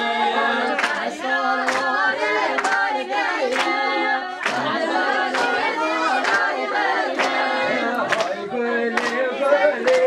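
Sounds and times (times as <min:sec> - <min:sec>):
group of voices singing: 0:00.0 - 0:10.0
sharp clap-like beats: 0:00.7 - 0:10.0.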